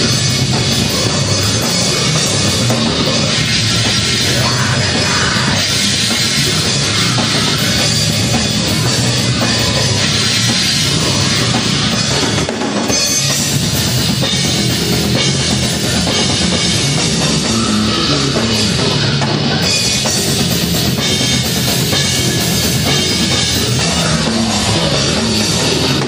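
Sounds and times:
drum kit: 0.0s - 26.0s
electric bass: 0.0s - 26.0s.

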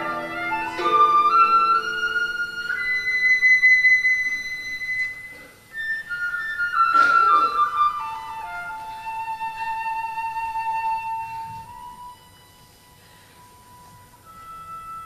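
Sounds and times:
slow flute melody: 0.0s - 15.0s.

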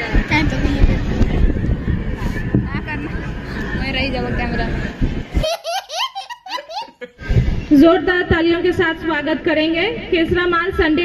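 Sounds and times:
small child laughing: 5.4s - 7.1s.

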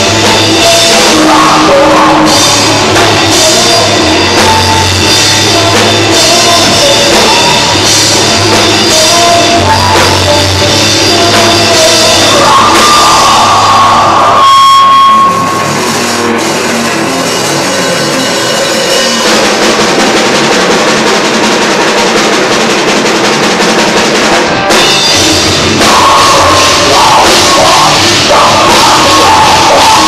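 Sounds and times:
drum kit: 0.0s - 30.0s
electric guitars: 0.0s - 30.0s.

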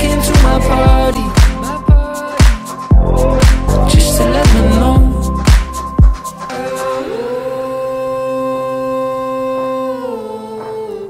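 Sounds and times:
person singing long note: 6.5s - 11.0s.

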